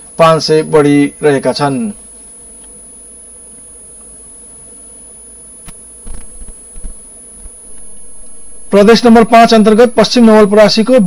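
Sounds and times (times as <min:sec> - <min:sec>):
low buzzing hum: 0:00.0 - 0:11.0
sharp click: 0:05.6 - 0:07.0.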